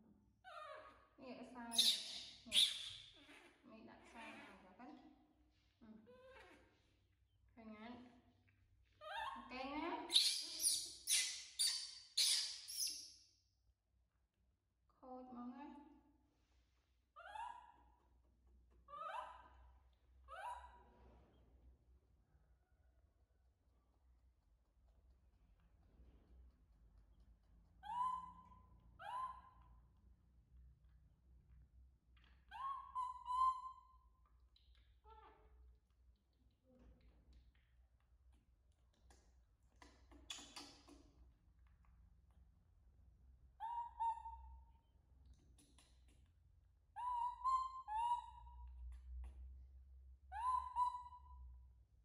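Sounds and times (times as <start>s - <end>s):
baby monkey calling: 1.7s - 3.3s, 10.1s - 13.0s, 27.8s - 29.6s, 32.5s - 33.9s, 47.0s - 48.5s, 50.4s - 51.2s.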